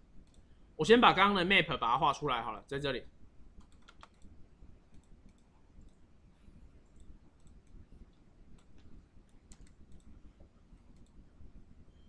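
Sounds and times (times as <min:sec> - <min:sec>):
computer keyboard clicks: 0:03.6 - 0:04.3, 0:08.6 - 0:10.1.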